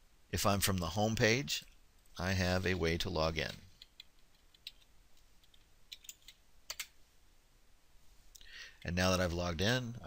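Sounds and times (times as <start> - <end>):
faint keyboard typing: 3.8 - 7.0.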